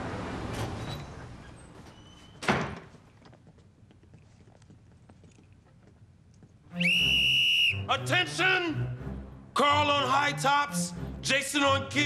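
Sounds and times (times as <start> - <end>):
whistle blown: 6.7 - 8.1.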